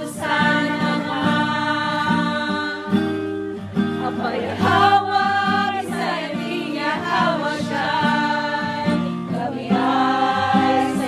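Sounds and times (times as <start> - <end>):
plucked acoustic guitar: 0.0 - 11.0
voices singing a religious song: 0.0 - 11.0.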